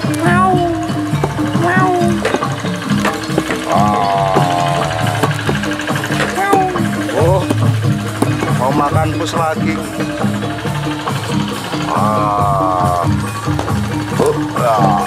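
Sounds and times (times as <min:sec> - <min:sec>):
person calling out: 0:00.0 - 0:02.4, 0:03.6 - 0:07.6, 0:11.9 - 0:13.2, 0:14.3 - 0:15.0
music with low steady tones: 0:00.0 - 0:15.0.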